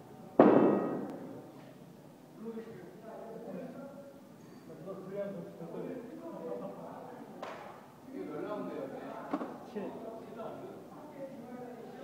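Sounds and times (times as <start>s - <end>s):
loud ringing bang: 0.4s - 1.1s.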